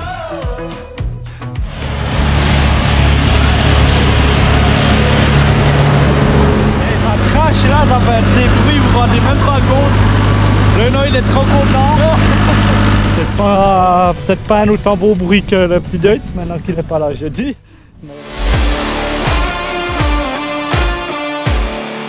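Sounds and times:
tractor engine droning: 1.6s - 16.6s
man talking: 6.8s - 10.0s, 10.7s - 12.3s, 13.2s - 17.6s
man laughing: 12.0s - 13.4s.

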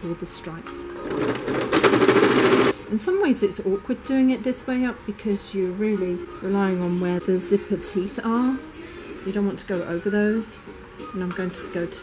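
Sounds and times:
sewing machine stitching: 1.0s - 2.8s.

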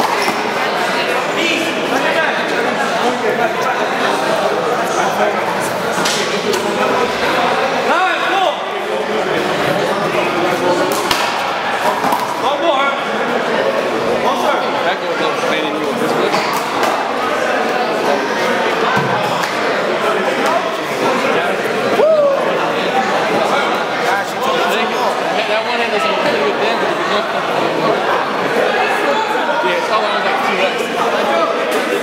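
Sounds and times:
men talking and calling out: 0.0s - 32.0s.

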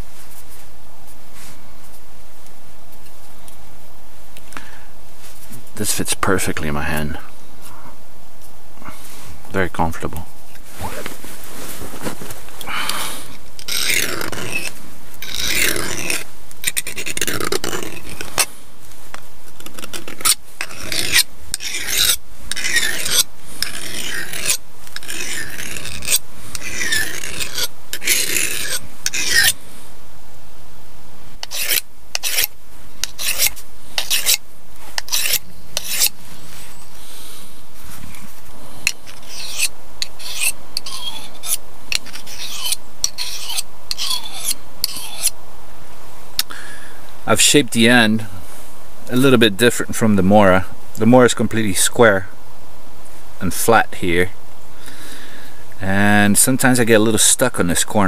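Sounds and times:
file rasping along blade: 13.6s - 18.5s, 19.7s - 29.6s, 31.4s - 34.4s, 35.0s - 36.2s, 38.8s - 45.4s.

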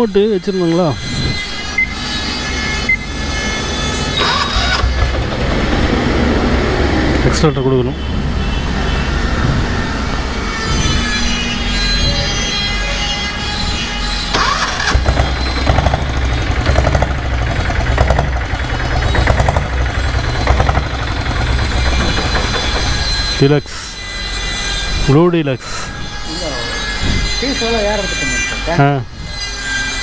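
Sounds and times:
diesel engine idling: 3.0s - 11.8s, 12.6s - 25.7s
higher-pitched tones: 18.4s - 29.0s.

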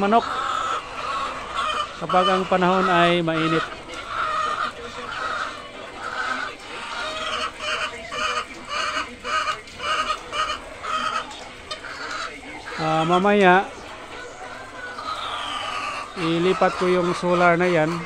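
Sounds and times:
hens clucking: 0.0s - 18.0s.

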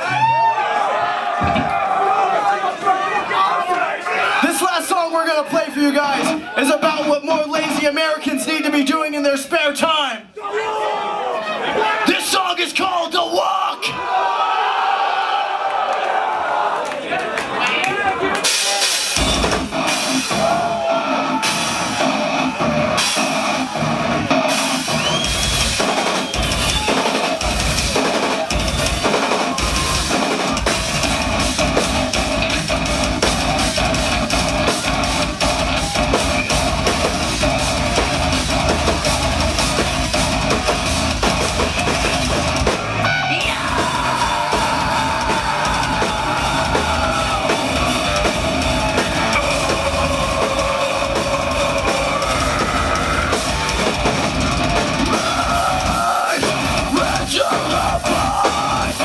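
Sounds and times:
heavy metal band playing: 4.3s - 9.9s, 18.4s - 59.0s.

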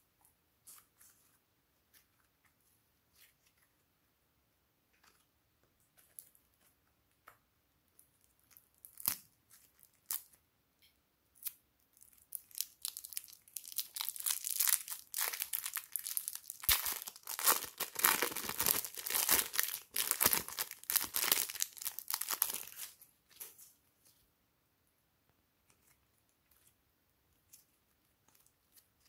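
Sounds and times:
plastic bag crinkling and tearing: 12.0s - 23.5s.

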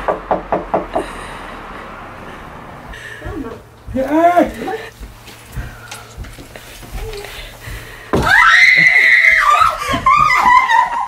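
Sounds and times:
excited shrieking voices: 8.2s - 11.0s
woman screaming: 8.2s - 11.0s.

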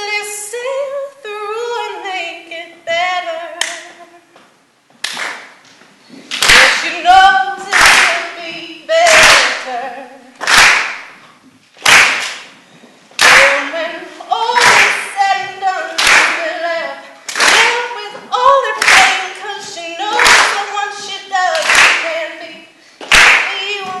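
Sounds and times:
woman singing unaccompanied: 0.0s - 4.4s, 6.4s - 10.4s, 13.2s - 24.0s
sharp hand claps: 5.0s - 5.6s, 6.3s - 6.9s, 7.7s - 8.3s, 9.1s - 9.7s, 10.4s - 11.2s, 11.8s - 12.6s, 13.2s - 13.7s, 14.6s - 15.1s, 16.0s - 16.5s, 17.3s - 17.8s, 18.8s - 19.2s, 20.2s - 20.7s, 21.5s - 22.1s, 23.0s - 23.7s.

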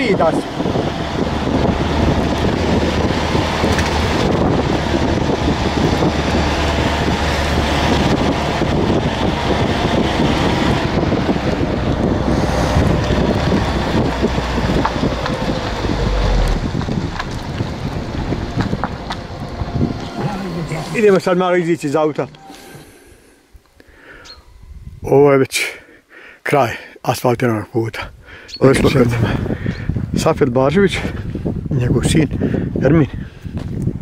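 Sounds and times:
wind buffeting microphone: 0.0s - 21.3s, 28.1s - 34.0s
car engine and tyre rumble: 0.0s - 22.5s
short low thump: 14.8s - 19.2s.

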